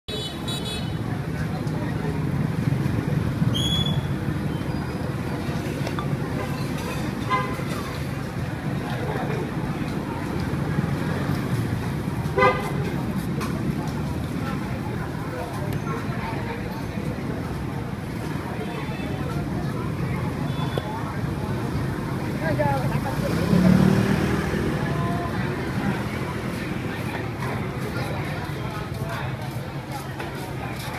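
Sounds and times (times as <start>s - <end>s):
street traffic rumble: 0.1s - 30.9s
voices: 0.1s - 30.9s
vehicle horn toot: 12.4s - 12.7s.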